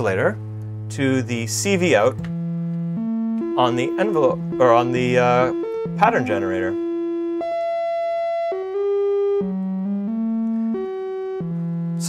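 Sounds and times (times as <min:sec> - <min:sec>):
analog synthesizer notes: 0:02.2 - 0:11.9.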